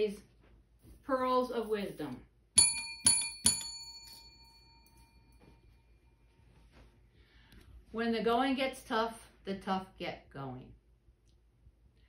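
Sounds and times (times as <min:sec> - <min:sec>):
small bell ringing: 0:02.6 - 0:05.6.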